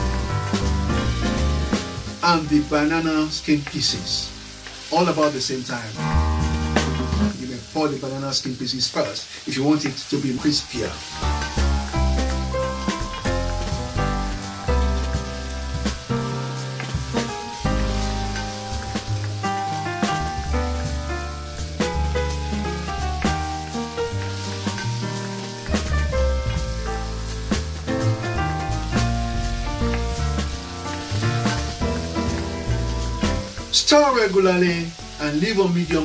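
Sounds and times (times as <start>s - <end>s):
background music with bass: 0.0s - 5.3s, 5.9s - 7.6s, 10.4s - 36.0s
vegetables sizzling in hot oil: 0.0s - 36.0s.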